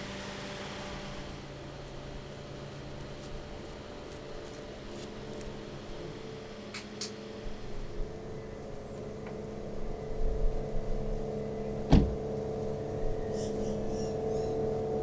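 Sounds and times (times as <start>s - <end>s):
steady low hum: 0.0s - 15.0s
van door shutting: 11.8s - 12.2s.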